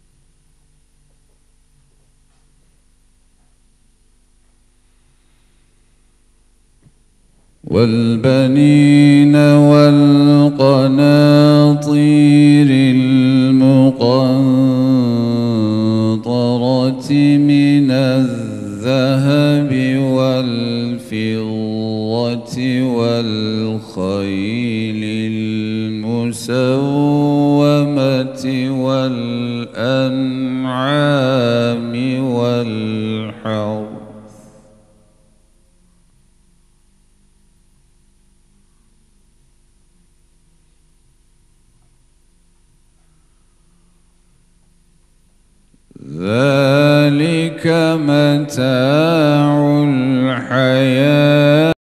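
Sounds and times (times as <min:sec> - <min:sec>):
man chanting recitation: 0:07.6 - 0:34.7, 0:45.9 - 0:51.8.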